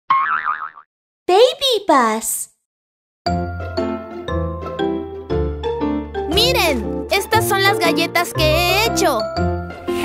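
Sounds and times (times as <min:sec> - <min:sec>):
warbling boing sound effect: 0:00.1 - 0:00.9.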